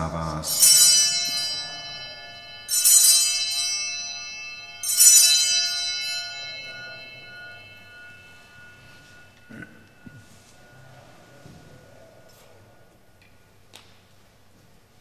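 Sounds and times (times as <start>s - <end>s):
altar bells ringing: 0.0s - 13.1s.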